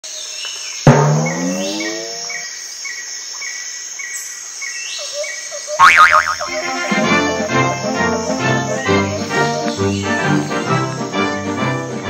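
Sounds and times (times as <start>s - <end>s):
cricket chirping: 0.1s - 11.2s
loud cartoon hit with falling pitches: 0.9s - 2.4s.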